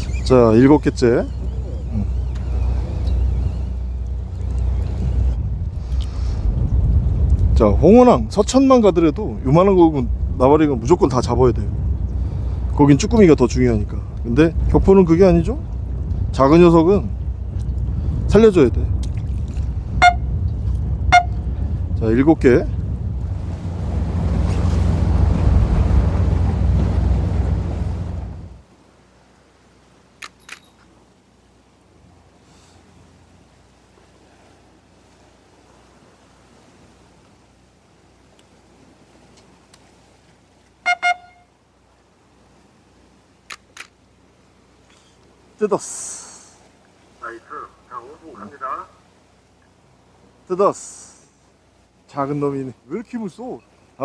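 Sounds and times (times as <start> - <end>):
wind noise on microphone: 0.0 - 28.6
boat engine idling: 0.0 - 30.2, 30.9 - 54.0
quiet sea background: 0.0 - 54.0.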